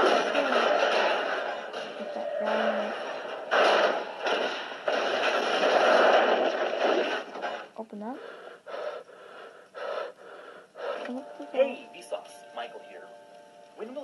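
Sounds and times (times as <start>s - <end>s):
gasping wheezing breaths: 8.2s - 11.1s.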